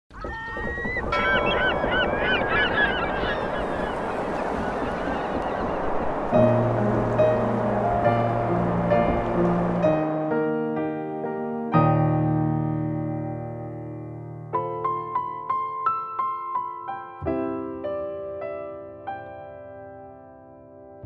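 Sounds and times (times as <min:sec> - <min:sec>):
birds calling: 0:00.1 - 0:06.7
steady rushing background: 0:00.2 - 0:10.7
slow piano music: 0:01.1 - 0:21.0.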